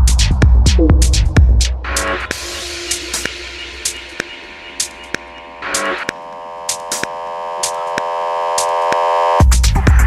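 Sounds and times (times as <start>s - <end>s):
sharp sparse percussion hits: 0.7s - 8.2s
sustained synthesizer chord: 2.3s - 8.7s.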